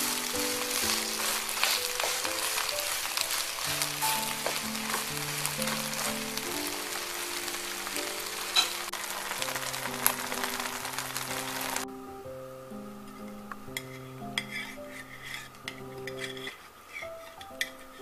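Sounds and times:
pancake sizzling in oil: 0.0s - 11.8s
gentle melody: 0.0s - 18.0s.

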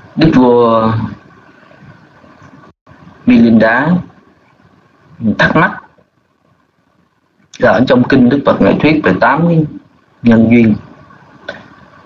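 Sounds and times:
faint steady hiss: 0.0s - 12.0s
man speaking: 0.2s - 1.2s, 3.3s - 4.2s, 5.2s - 6.0s, 7.6s - 10.9s.

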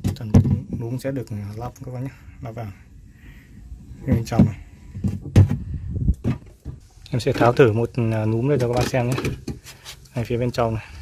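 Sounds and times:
hard plastic knocks and clicks: 0.0s - 1.0s, 4.0s - 6.8s, 8.2s - 9.7s.

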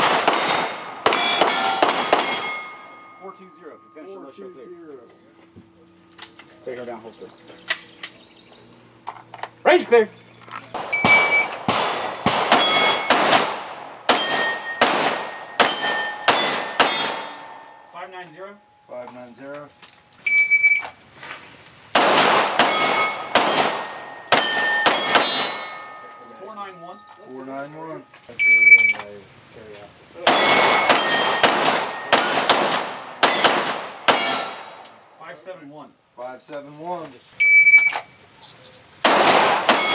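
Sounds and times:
rapid pistol shots: 0.0s - 2.6s, 10.8s - 17.6s, 21.9s - 25.8s, 30.2s - 34.8s, 39.0s - 39.9s
steel plates ringing: 0.0s - 5.4s, 11.0s - 13.2s, 14.1s - 20.6s, 22.6s - 29.0s, 30.2s - 34.7s
shot timer beep: 10.9s - 11.6s.

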